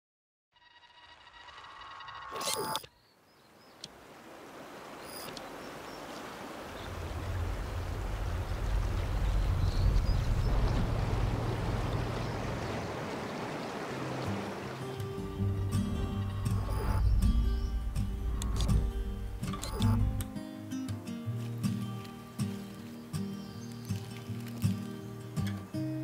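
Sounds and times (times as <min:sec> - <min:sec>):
fast-flowing creek rushing: 0:03.8 - 0:20.7
deep rumble: 0:06.8 - 0:13.0, 0:15.3 - 0:20.3
logo jingle: 0:15.4 - 0:20.4.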